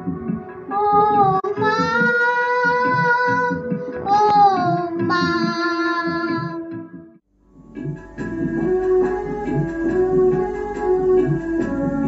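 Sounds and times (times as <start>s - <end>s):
rhythmic instrumental backing: 0.0s - 12.0s
girl singing: 0.7s - 6.8s.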